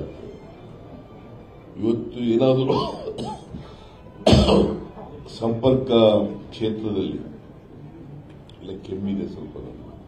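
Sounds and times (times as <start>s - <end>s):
man coughing: 2.7s - 3.6s, 4.3s - 4.8s.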